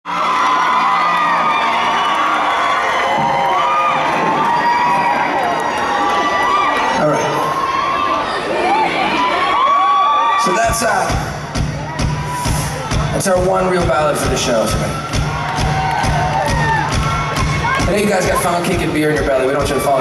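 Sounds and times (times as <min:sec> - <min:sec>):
crowd cheering and screaming: 0:00.1 - 0:20.0.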